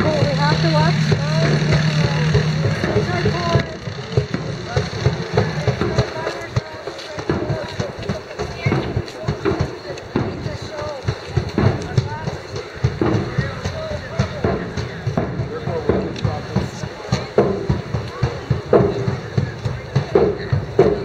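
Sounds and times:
indistinct crowd voices: 0:00.0 - 0:21.0
vehicle engine humming: 0:00.0 - 0:21.0.

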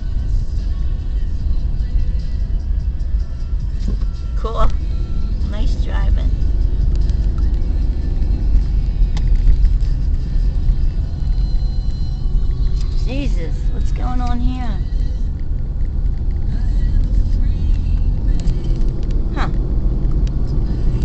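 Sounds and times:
car driving rumble: 0:00.0 - 0:21.0.

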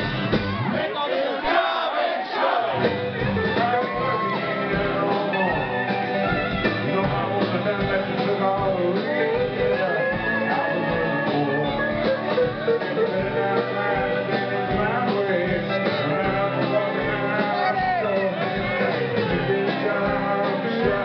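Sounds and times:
steady drum beat: 0:00.0 - 0:00.8, 0:02.5 - 0:21.0
electric guitar with bending notes: 0:02.7 - 0:21.0.

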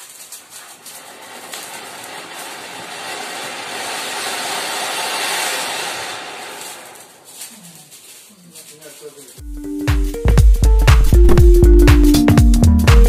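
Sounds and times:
ground fountain firework hissing: 0:00.0 - 0:09.4.

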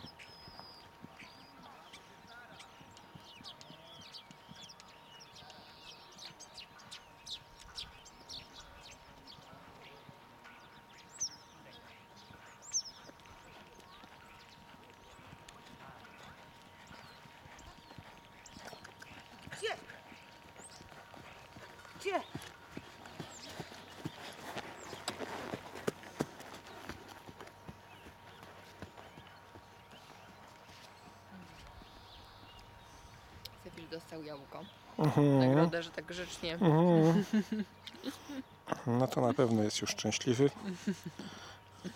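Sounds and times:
horse hoofbeats trotting on sand: 0:00.0 - 0:34.8.

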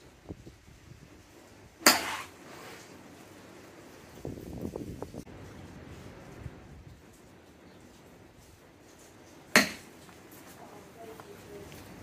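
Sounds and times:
golf club striking ball: 0:01.8 - 0:02.3, 0:09.6 - 0:09.9.

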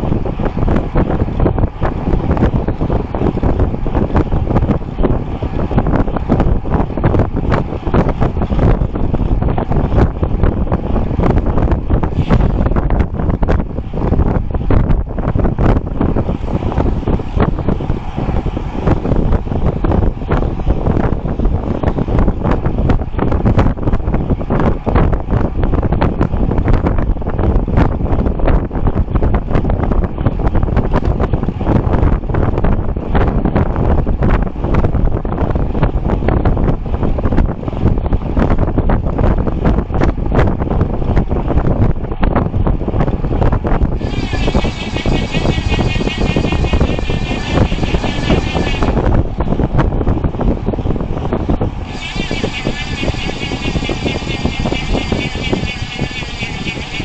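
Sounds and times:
bike tyre and road noise: 0:00.0 - 0:57.0
wind rushing over microphone: 0:00.0 - 0:57.0
high wavering buzz: 0:44.0 - 0:49.2, 0:51.8 - 0:57.0.

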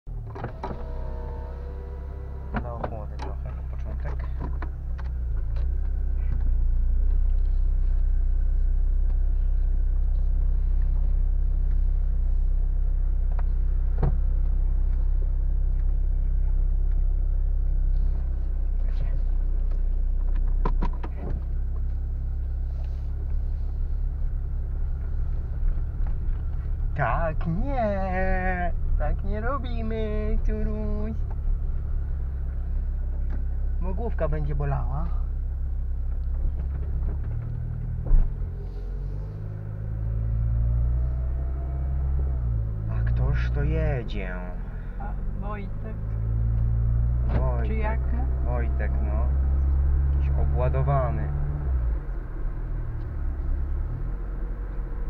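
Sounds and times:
road and engine rumble: 0:00.0 - 0:55.0.

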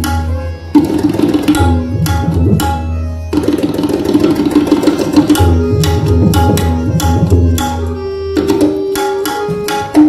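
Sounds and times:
harmonium melody: 0:00.0 - 0:10.0
tabla strokes: 0:00.0 - 0:10.0.

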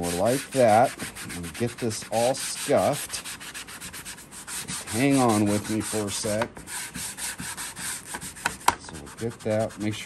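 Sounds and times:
scuff pad scrubbing plastic track: 0:00.0 - 0:10.0.

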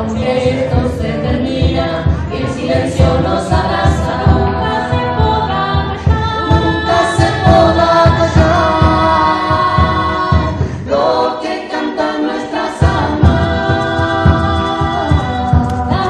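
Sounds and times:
conga drums: 0:00.0 - 0:16.0
people singing together: 0:00.0 - 0:16.0.

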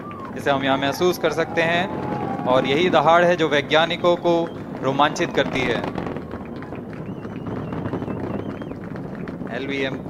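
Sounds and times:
rocket roaring: 0:00.0 - 0:10.0.

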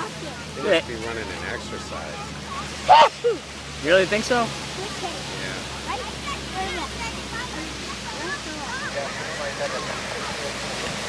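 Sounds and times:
small waves breaking on a beach: 0:00.0 - 0:11.0.

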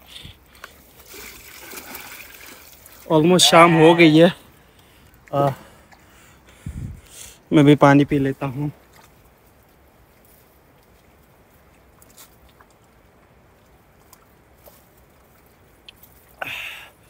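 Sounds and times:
breathy exhale: 0:16.4 - 0:17.0.

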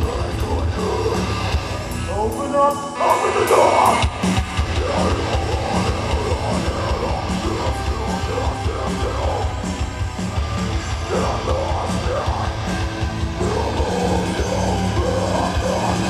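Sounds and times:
heavy metal band playing: 0:00.0 - 0:16.0.

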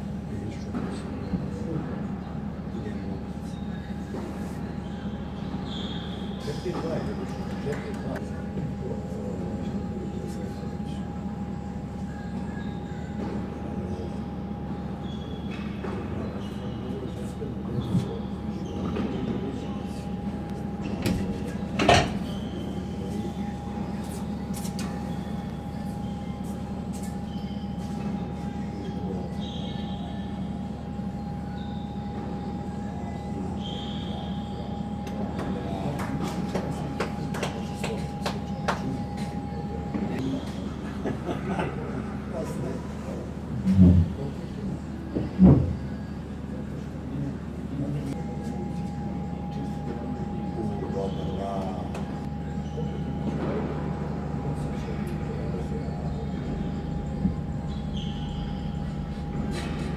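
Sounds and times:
ventilation hum: 0:00.0 - 0:59.9
constant high tone: 0:04.8 - 0:41.0, 0:46.2 - 0:59.9.

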